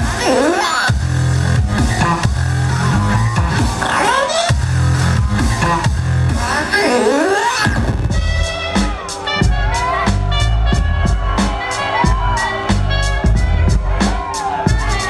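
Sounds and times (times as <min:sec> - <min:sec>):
loud bass-heavy music: 0:00.0 - 0:15.0.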